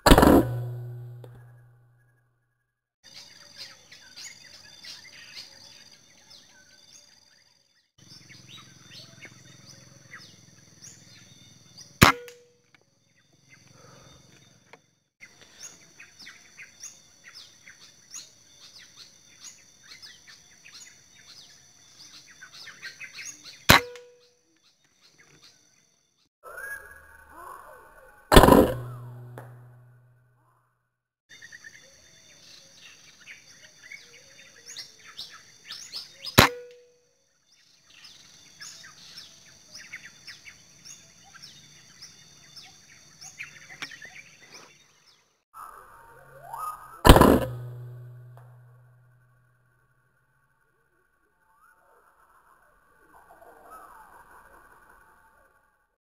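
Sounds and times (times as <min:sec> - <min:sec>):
loud thump with brief hum: 0:00.0 - 0:01.8, 0:28.3 - 0:30.0, 0:47.1 - 0:48.8
air rifle shots: 0:00.1 - 0:01.6, 0:28.3 - 0:29.8, 0:47.1 - 0:48.6.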